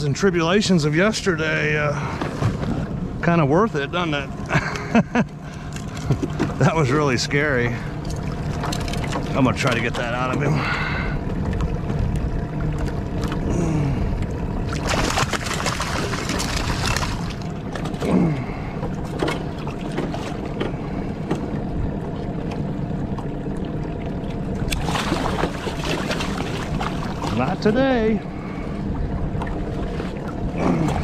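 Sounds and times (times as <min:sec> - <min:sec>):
boat motor humming: 0:00.0 - 0:31.0
fish thrashing and splashing: 0:07.9 - 0:13.8, 0:14.6 - 0:21.5, 0:24.6 - 0:27.6.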